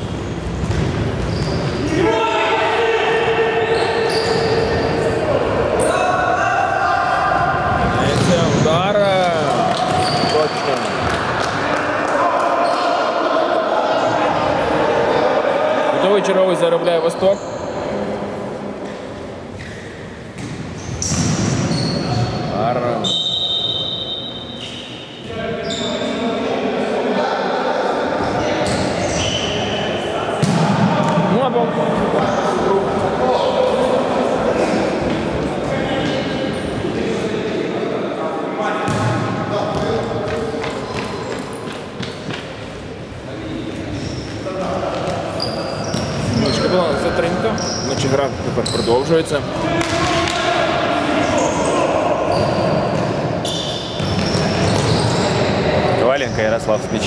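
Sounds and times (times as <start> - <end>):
men calling out in echoing hall: 1.8 - 18.8, 25.2 - 41.7.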